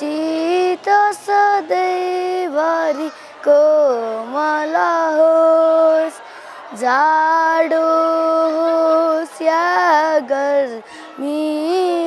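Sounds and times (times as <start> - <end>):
boy singing solo: 0.0 - 12.0.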